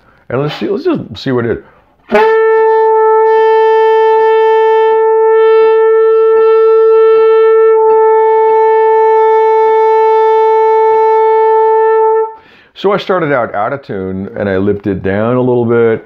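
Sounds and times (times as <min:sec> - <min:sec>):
tenor saxophone long note: 0:02.1 - 0:12.4.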